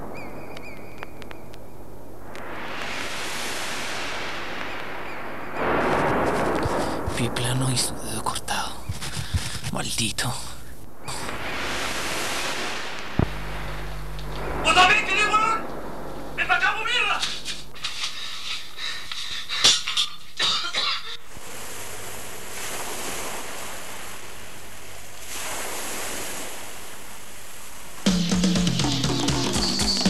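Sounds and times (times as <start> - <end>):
outdoor rushing noise: 1.8 - 9.8, 10.8 - 18.8
person's voice: 7.1 - 11.4, 14.6 - 15.7, 16.3 - 17.9
music with drums and bass: 28.1 - 30.0.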